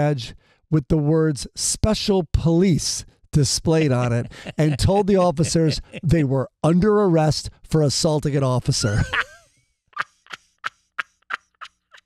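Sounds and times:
man laughing hard: 0:03.8 - 0:06.1, 0:08.8 - 0:10.4.

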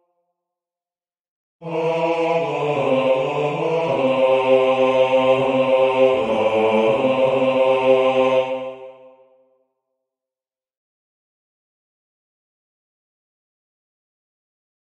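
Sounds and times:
bass voice singing: 0:01.6 - 0:08.4.

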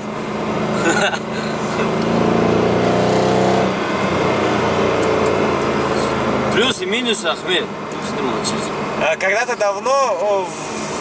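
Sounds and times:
car engine accelerating: 0:00.0 - 0:11.0.

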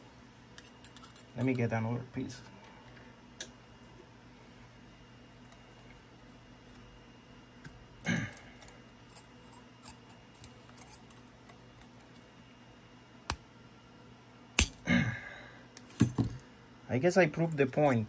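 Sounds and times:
tweezers handling copper strip: 0:08.5 - 0:12.3.

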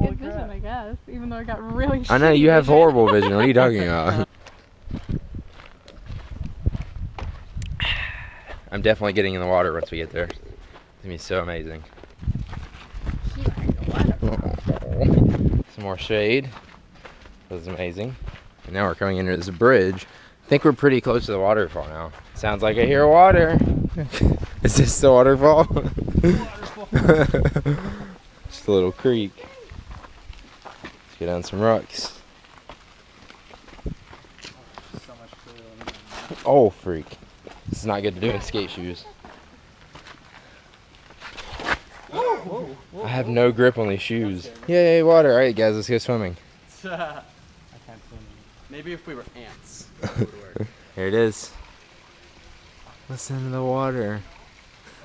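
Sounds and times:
footsteps on dirt trail: 0:01.6 - 0:42.2.

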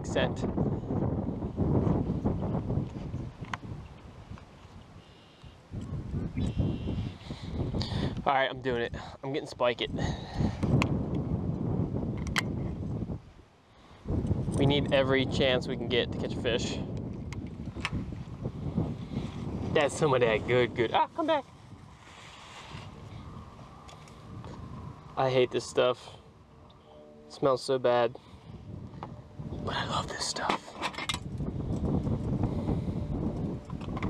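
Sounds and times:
wind buffeting microphone: 0:00.0 - 0:26.7, 0:27.9 - 0:34.0.

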